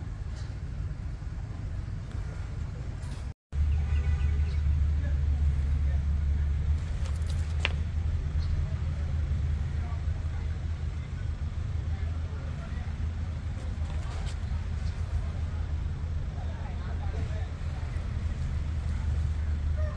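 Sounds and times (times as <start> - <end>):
low outdoor rumble: 0.0 - 19.9.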